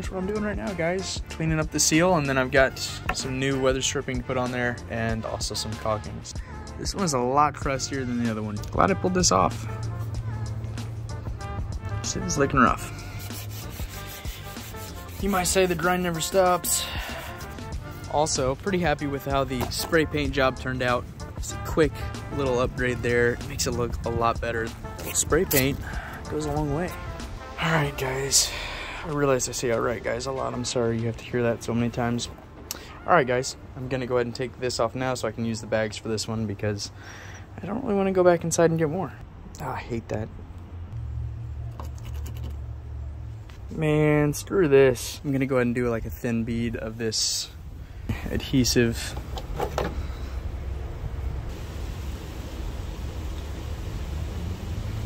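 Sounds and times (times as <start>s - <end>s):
fingers scratching foam off metal: 13.1s - 17.5s.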